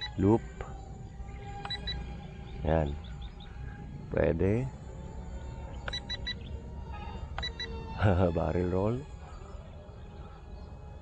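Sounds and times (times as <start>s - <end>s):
short electronic beeps: 1.6s - 2.0s, 5.8s - 6.4s, 7.4s - 7.7s.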